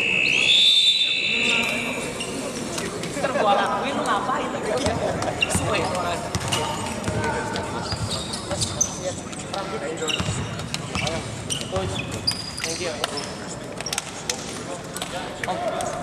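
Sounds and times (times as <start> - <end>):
players chattering: 0.0 - 16.0
basketball bouncing: 6.3 - 7.3, 10.2 - 11.1
shoes squeaking on hardwood: 10.0 - 14.1.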